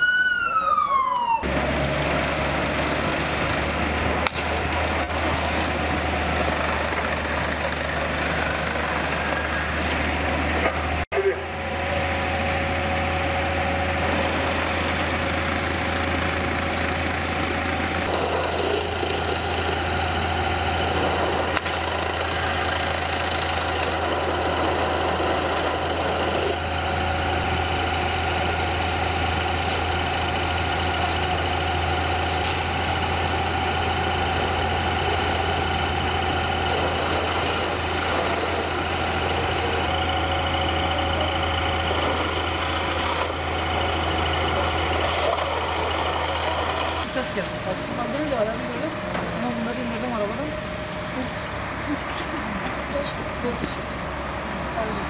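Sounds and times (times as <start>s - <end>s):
fire engine pump running: 0.0s - 55.0s.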